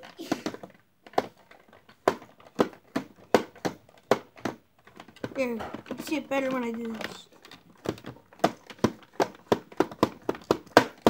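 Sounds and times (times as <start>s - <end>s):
plastic fists clacking on chest: 0.0s - 11.0s.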